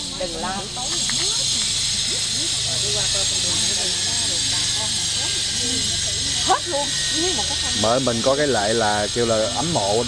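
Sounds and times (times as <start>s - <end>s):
people talking: 0.0s - 10.0s
steady high hiss: 0.0s - 10.0s.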